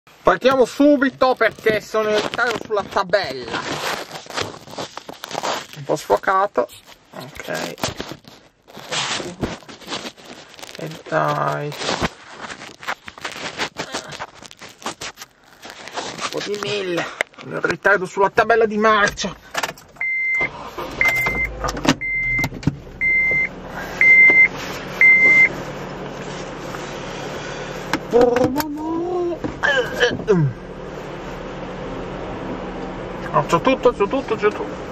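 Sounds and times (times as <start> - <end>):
rustling scraping noise: 0.4 - 17.9, 23.7 - 27.9
car warning chime beeping: 20.0 - 25.6.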